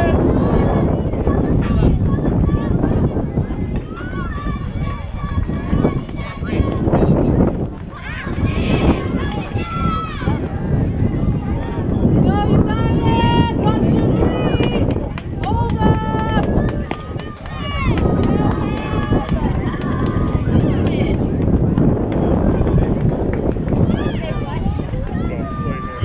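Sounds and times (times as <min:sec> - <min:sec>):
wind rumble on microphone: 0:00.0 - 0:26.0
young voices calling and cheering: 0:00.0 - 0:26.0.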